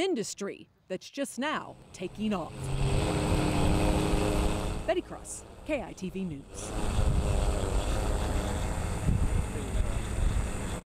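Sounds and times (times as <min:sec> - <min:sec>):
drone rotors whining: 0:01.7 - 0:10.8
wind buffeting microphone: 0:06.4 - 0:10.8.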